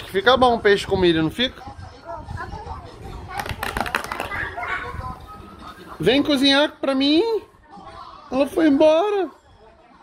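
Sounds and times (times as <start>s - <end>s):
television music: 0.0s - 10.0s.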